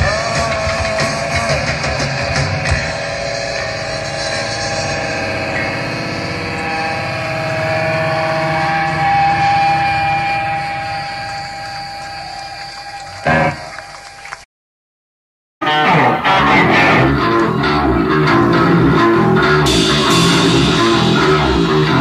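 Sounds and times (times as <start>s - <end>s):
drums: 0.0s - 5.8s, 15.6s - 22.0s
electric guitar held tones: 1.9s - 13.9s, 15.6s - 22.0s.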